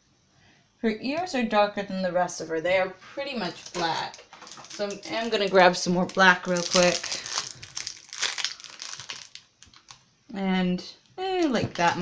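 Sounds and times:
plastic wrapper crinkling: 3.3s - 10.1s, 11.2s - 12.0s.

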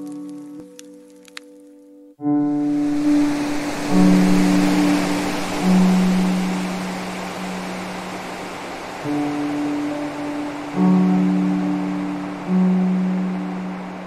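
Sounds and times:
slow soft piano music: 0.0s - 14.0s
water sound: 2.4s - 14.0s.

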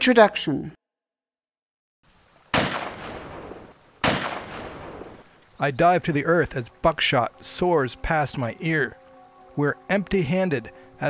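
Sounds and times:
shotgun blasts with echo: 2.5s - 5.2s.

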